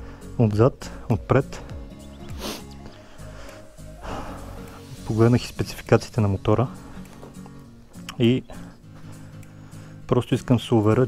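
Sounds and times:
music with held low notes: 0.0 - 11.0.

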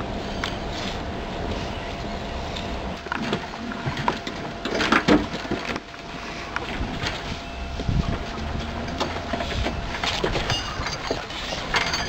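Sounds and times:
objects knocking and scraping: 8.6 - 12.0.

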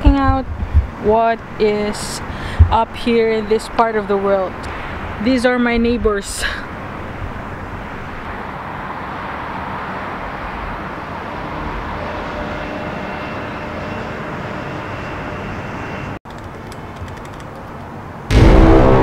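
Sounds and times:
distant city traffic hum: 0.0 - 19.0
faint clicks: 16.3 - 17.9.

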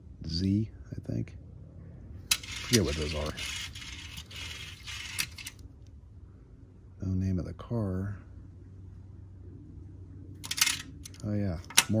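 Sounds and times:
faint low hum: 0.0 - 12.0
toy car clicks: 2.3 - 5.6, 10.4 - 12.0.

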